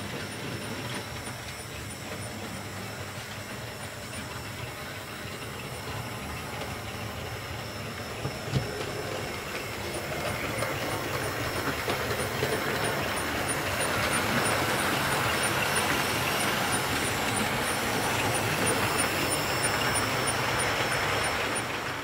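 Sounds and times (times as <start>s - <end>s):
model trains running on track: 0.0s - 22.0s.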